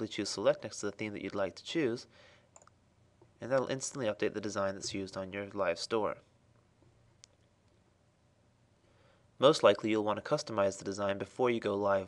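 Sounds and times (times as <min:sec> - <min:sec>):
faint click: 0:02.5 - 0:03.7.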